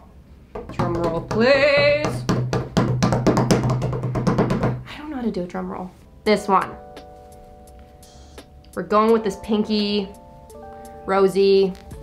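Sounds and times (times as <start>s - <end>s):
hands drumming on tabletop: 0.5s - 4.8s
background music: 6.0s - 12.0s.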